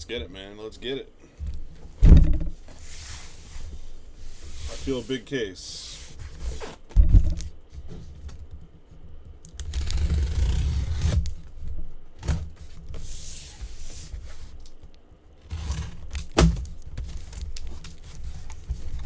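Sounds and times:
heavy thump on table: 2.0 - 2.6, 6.9 - 7.4
cardboard scraping and rubbing: 2.2 - 8.1, 9.7 - 11.3, 12.6 - 14.6, 15.4 - 16.1, 17.0 - 19.0.

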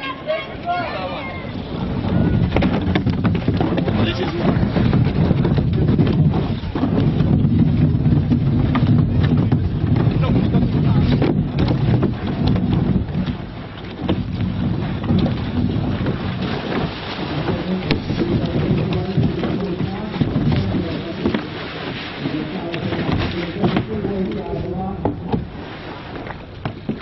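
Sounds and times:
wind rumbling on microphone: 0.6 - 27.0.

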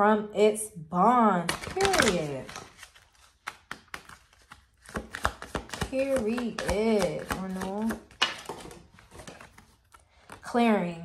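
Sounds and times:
cards being shuffled: 1.5 - 10.5.

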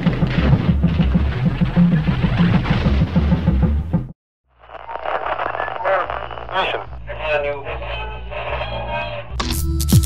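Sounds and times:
tinny broadcast voices: 4.6 - 9.4.

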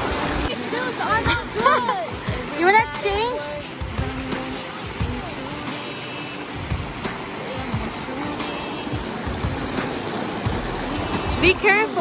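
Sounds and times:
creek rushing over rocks: 0.0 - 12.0.

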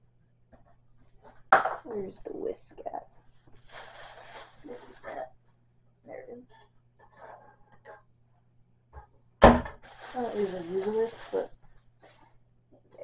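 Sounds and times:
sharp thump: 9.4 - 9.8.

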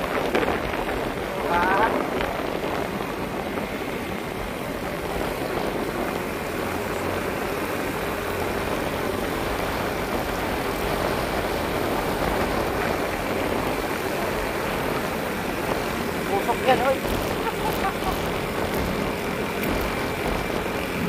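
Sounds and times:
motorbike engine running: 0.0 - 21.0
wind and road noise: 0.0 - 21.0.

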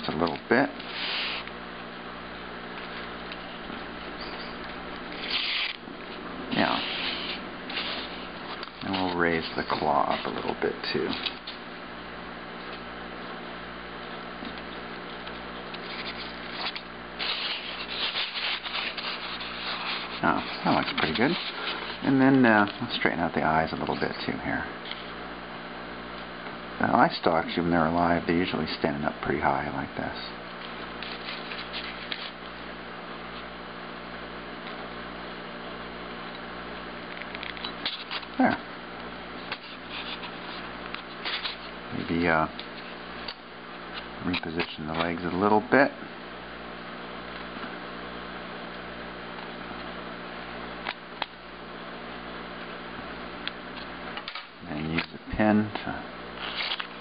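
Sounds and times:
steady low hum: 0.0 - 57.0
hands scratching styrofoam: 0.8 - 1.6, 5.2 - 5.8, 6.6 - 10.6, 15.8 - 22.0, 39.5 - 41.8
fingers scratching styrofoam: 5.2 - 5.8, 15.8 - 22.0.

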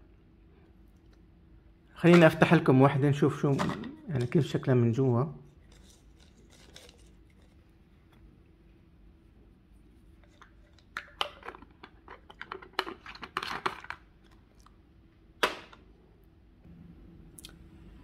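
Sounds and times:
plastic pill bottle clicks and rustles: 5.6 - 7.6, 10.2 - 14.4.

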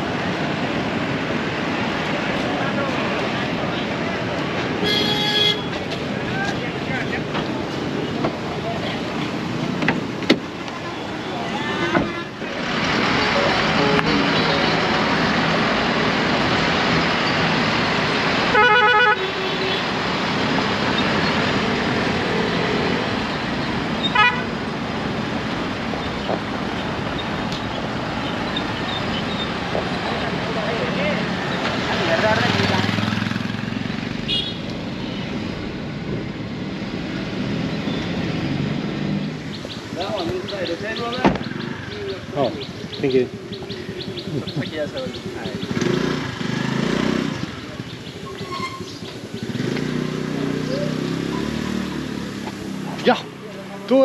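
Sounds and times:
street traffic: 0.0 - 54.0
vehicle horns honking: 4.8 - 5.8, 10.9 - 15.2, 18.5 - 20.0, 24.0 - 24.6, 34.3 - 34.7, 48.3 - 49.0.

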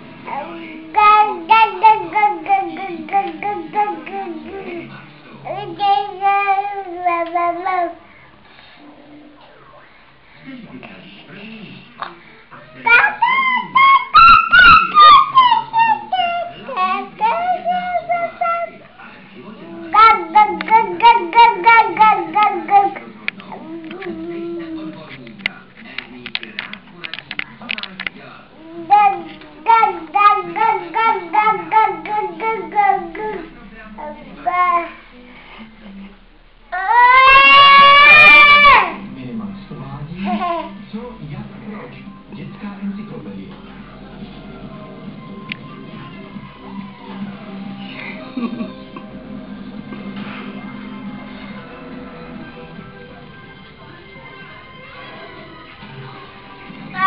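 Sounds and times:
toddler singing wordlessly: 0.3 - 4.8, 5.5 - 8.0, 28.6 - 33.4
toddler babbling sing-song: 0.3 - 8.0, 12.9 - 18.8, 19.6 - 24.8, 28.6 - 35.0.

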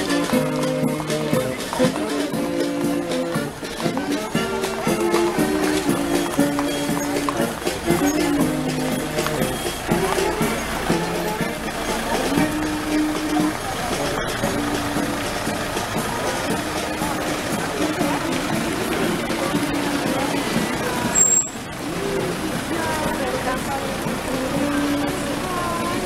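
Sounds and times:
music with long held notes: 0.0 - 26.0
van driving past: 0.0 - 26.0.

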